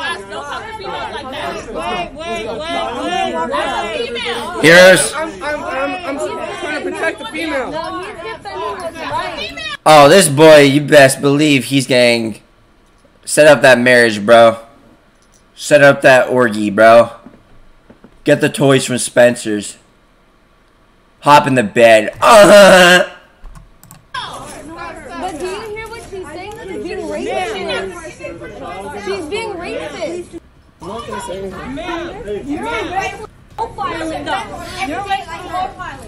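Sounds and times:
people talking over each other: 0:00.0 - 0:12.3, 0:24.2 - 0:36.0.

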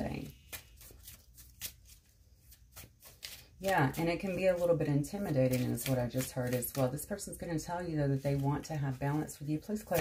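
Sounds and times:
cards being shuffled: 0:00.3 - 0:07.1.

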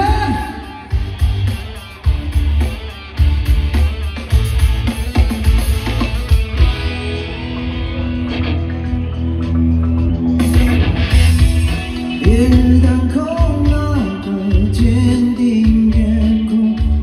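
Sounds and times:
bass guitar: 0:00.0 - 0:17.0
drums: 0:00.0 - 0:17.0
electric guitar: 0:00.0 - 0:17.0
loud rock song through speakers: 0:00.0 - 0:17.0.

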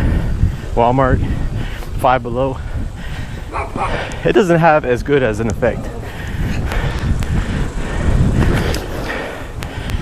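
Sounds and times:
inline skate wheels on concrete: 0:00.0 - 0:10.0
sharp ticks: 0:05.4 - 0:05.6.

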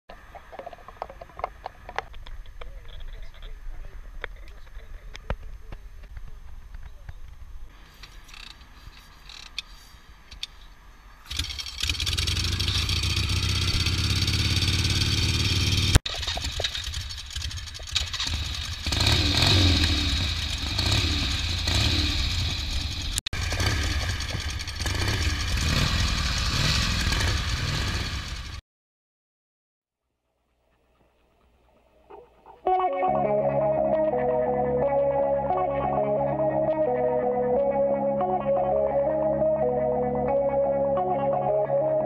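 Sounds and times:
motorcycle engines idling and revving: 0:00.1 - 0:28.6.

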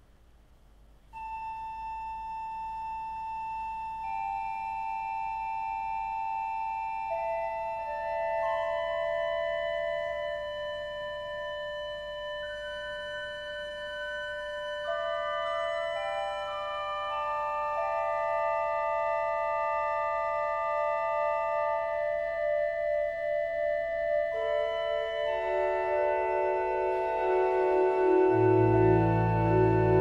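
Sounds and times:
organ playing long-held notes: 0:07.1 - 0:30.0.

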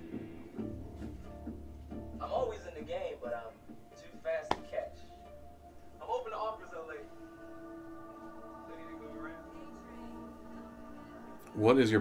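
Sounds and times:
person speaking: 0:04.5 - 0:05.0.

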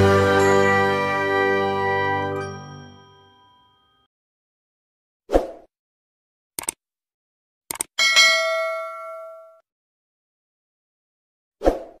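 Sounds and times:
bright chime-like ding: 0:02.4 - 0:04.1, 0:08.0 - 0:09.6.

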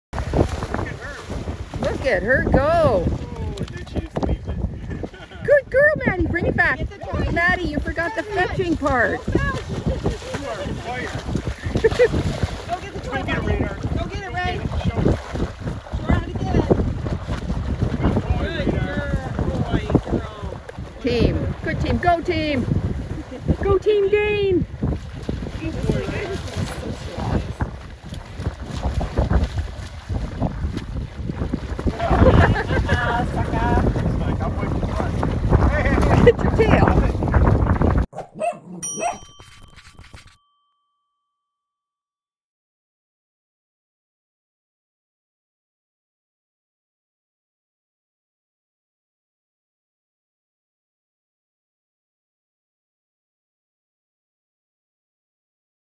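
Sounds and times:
dog splashing through water: 0:00.2 - 0:02.2, 0:07.2 - 0:21.6, 0:24.8 - 0:37.1
wind noise on microphone: 0:00.2 - 0:38.2
bell-like chime: 0:38.8 - 0:42.0.

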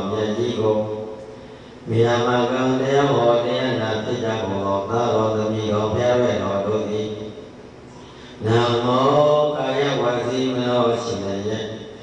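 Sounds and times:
man chanting into microphone: 0:00.0 - 0:07.5, 0:08.4 - 0:12.0.

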